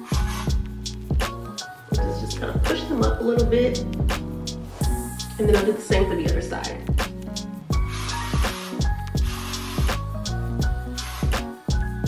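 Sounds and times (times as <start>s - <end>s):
background music with drum beat: 0.0s - 12.0s.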